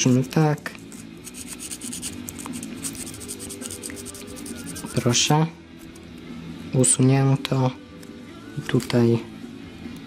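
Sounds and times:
sandpaper scratching plastic: 0:00.0 - 0:05.2.

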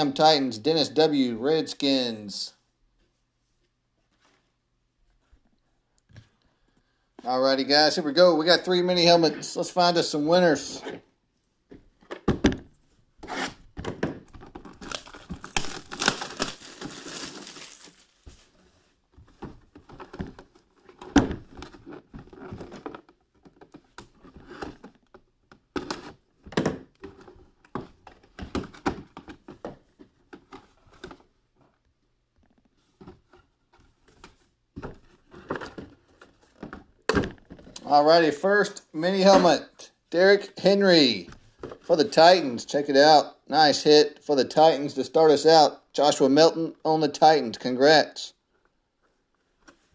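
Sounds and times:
plastic wrap tearing and crinkling: 0:14.5 - 0:18.6
knife slitting plastic wrap: 0:14.8 - 0:18.2.

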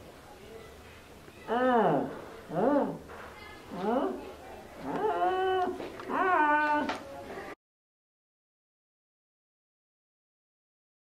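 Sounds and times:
wailing cries: 0:04.8 - 0:07.0.

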